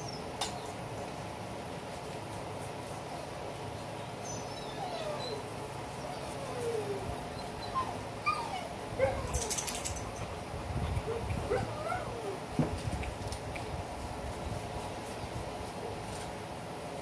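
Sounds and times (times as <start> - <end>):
dog whining: 4.5 - 10.0, 11.1 - 12.4.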